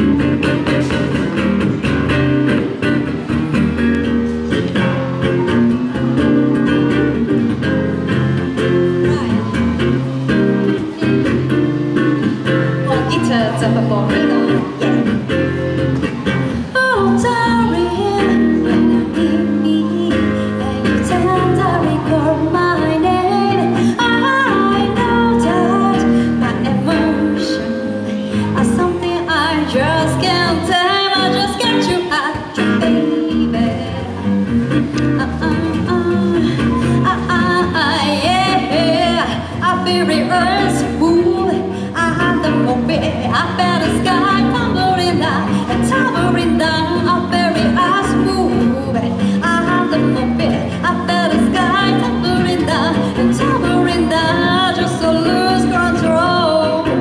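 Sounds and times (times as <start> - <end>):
amplified electric guitar: 0.0 - 57.0
woman singing into a microphone: 0.0 - 57.0.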